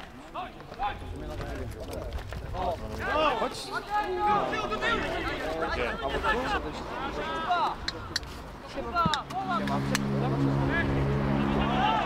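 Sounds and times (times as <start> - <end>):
players shouting: 10.6 - 12.0.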